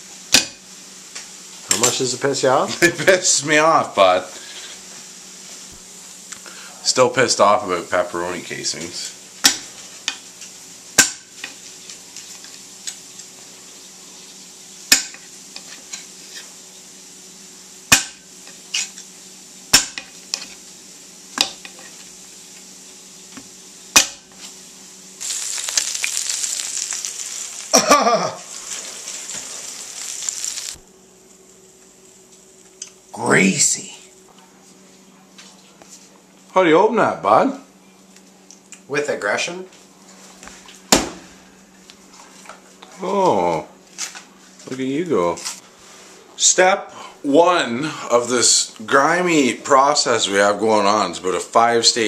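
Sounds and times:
loud steady hiss: 0.0 - 34.3.

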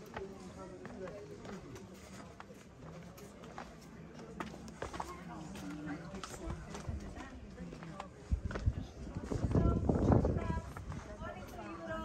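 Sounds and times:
footsteps on stone steps: 0.0 - 12.0
people talking: 0.0 - 12.0.

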